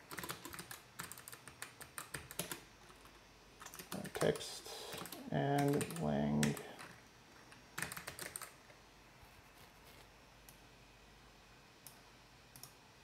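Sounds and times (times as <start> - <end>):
computer keyboard typing: 0.0 - 8.6.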